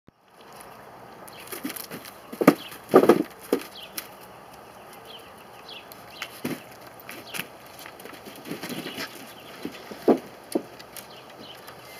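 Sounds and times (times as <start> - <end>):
dogs slapping and knocking: 1.5 - 3.7.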